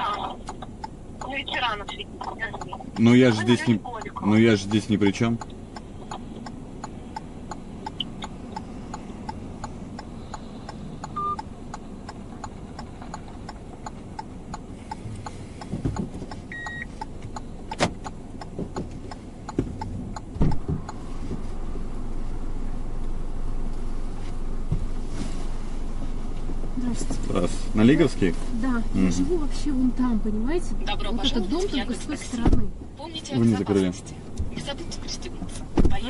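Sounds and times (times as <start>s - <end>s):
car indicator ticking: 0.0s - 21.0s
idling engine hum: 0.0s - 36.0s
car door opening: 17.7s - 21.5s, 35.6s - 36.0s.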